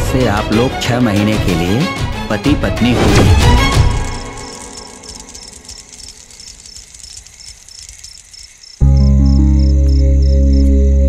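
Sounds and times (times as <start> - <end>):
cricket chirping: 3.7 - 11.0.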